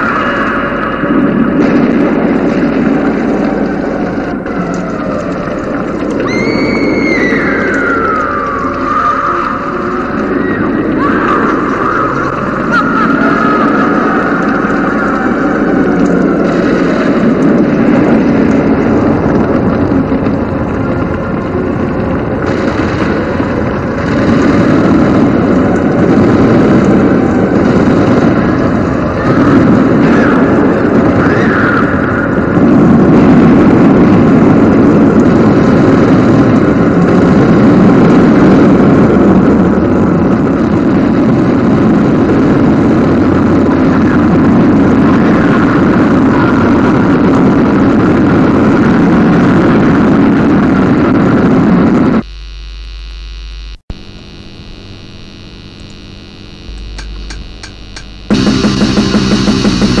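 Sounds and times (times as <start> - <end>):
rumbling noise drone: 0.0 - 60.0
low electrical hum: 52.2 - 60.0.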